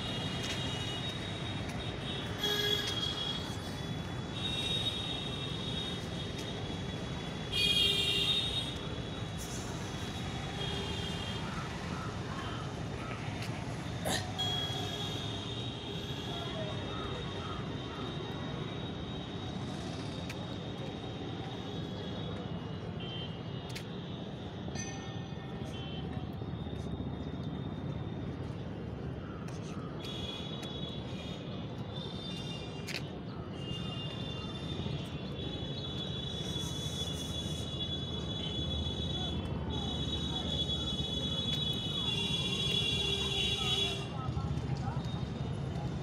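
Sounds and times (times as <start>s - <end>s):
vehicle road noise rumble: 0.0s - 24.7s.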